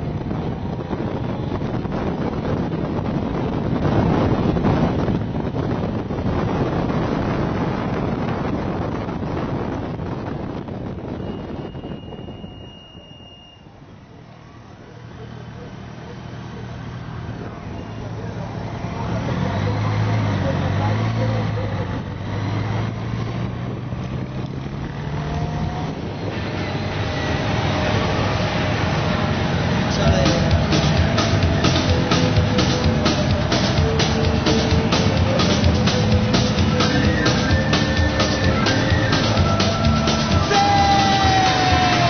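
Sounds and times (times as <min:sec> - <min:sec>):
wind rushing over microphone: 0:00.0 - 0:13.1, 0:18.6 - 0:42.0
motorcycle engines accelerating: 0:14.1 - 0:42.0.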